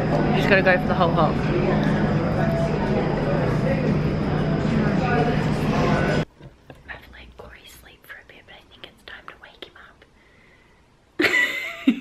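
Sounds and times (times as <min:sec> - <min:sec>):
cafe hubbub: 0:00.0 - 0:10.0
steady low hum: 0:00.0 - 0:11.3
woman whispering: 0:06.8 - 0:10.1.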